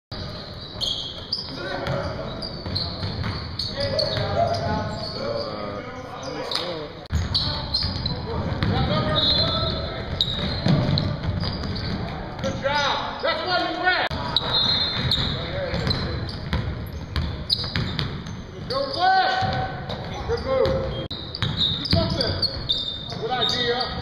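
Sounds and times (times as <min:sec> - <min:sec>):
players calling out: 0:00.6 - 0:17.9
basketball bouncing on hardwood: 0:07.1 - 0:09.6, 0:10.2 - 0:12.2, 0:14.9 - 0:18.3.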